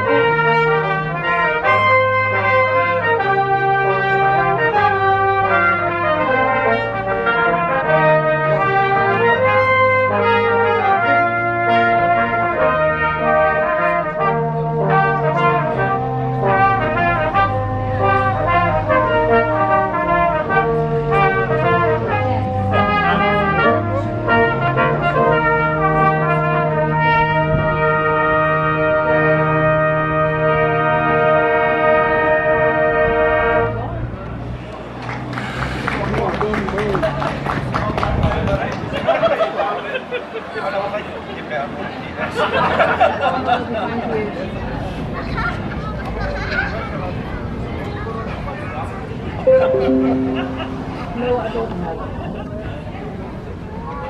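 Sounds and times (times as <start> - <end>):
brass band playing: 0.0 - 33.7, 49.5 - 51.5.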